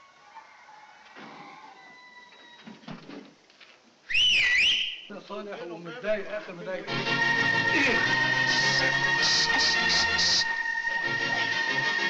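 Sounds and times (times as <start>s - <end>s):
short loud high whistle: 4.1s - 5.1s.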